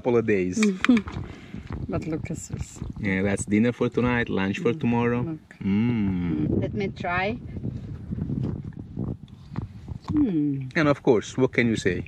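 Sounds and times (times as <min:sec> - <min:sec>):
person humming: 0:05.6 - 0:06.5.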